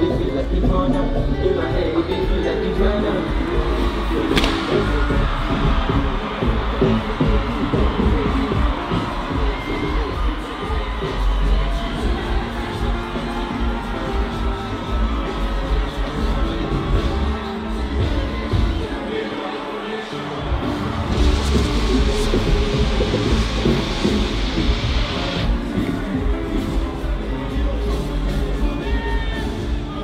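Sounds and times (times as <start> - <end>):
large crowd cheering: 0.0 - 30.0
loud music with heavy bass: 0.0 - 30.0
sharp crack: 4.3 - 5.0.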